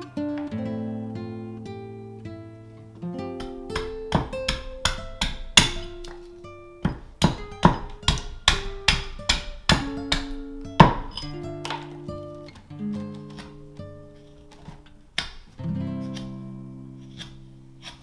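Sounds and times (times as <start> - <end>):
acoustic guitar picked notes: 0.0 - 18.0
percussive guitar hits: 3.3 - 12.2.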